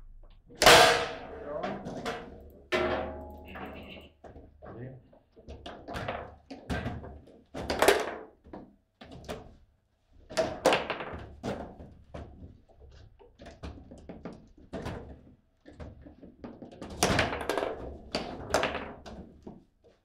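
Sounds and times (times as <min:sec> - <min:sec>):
foosball ball and players clacking: 0:00.6 - 0:20.0.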